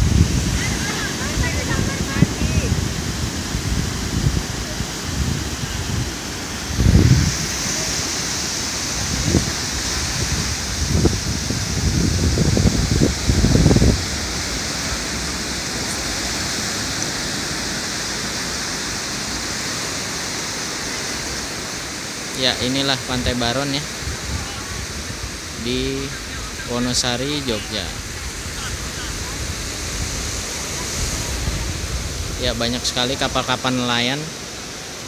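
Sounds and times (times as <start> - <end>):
surf breaking on beach: 0.0 - 35.0
wind gusts on microphone: 0.0 - 35.0.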